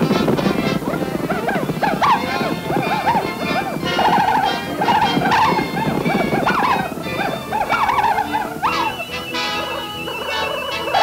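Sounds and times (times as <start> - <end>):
cartoon soundtrack music: 0.0 - 11.0
swooping animal-like cries: 0.0 - 11.0.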